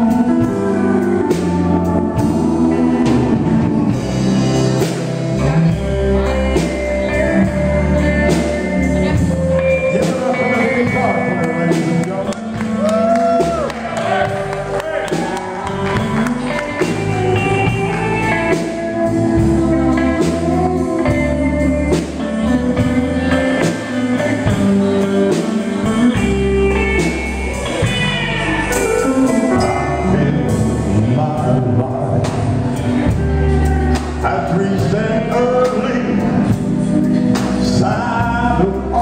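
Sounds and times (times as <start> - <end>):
bass: 0.0 - 39.0
country band playing: 0.0 - 39.0
drums: 0.0 - 39.0
electric guitar melody: 0.0 - 39.0
pedal steel guitar: 0.0 - 39.0.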